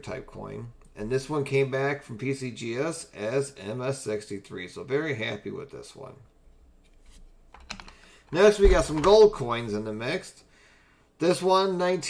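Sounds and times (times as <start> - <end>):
plastic cases clicking together: 7.5 - 8.0.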